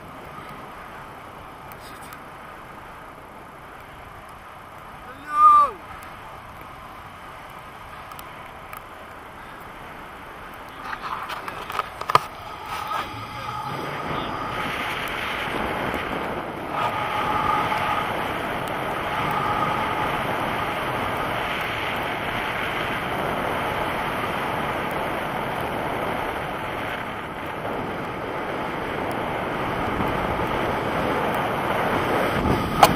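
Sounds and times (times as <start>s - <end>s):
wind rushing over microphone: 0.0s - 32.9s.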